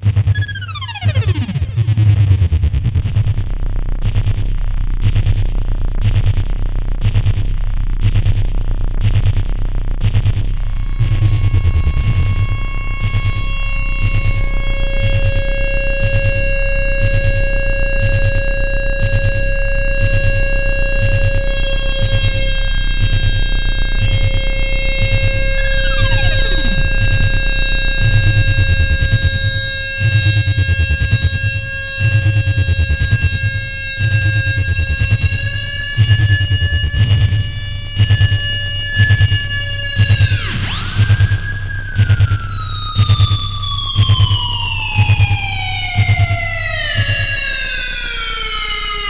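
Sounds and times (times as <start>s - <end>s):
fast-pulsing low rumble: 1.3s - 48.1s
steady synthesizer tones: 3.0s - 49.0s
tone gliding steeply downward: 10.8s - 48.1s
sharp clicks: 16.9s - 18.4s, 19.0s - 24.3s, 25.0s - 48.2s.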